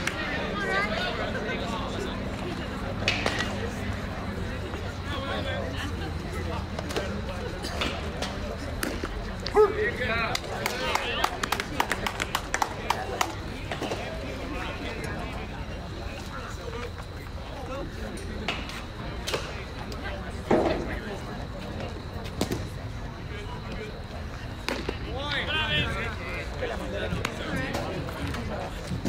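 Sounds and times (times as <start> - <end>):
sharp claps: 0.0 - 0.2, 3.0 - 3.6, 10.2 - 13.4
voices calling out: 0.0 - 29.0.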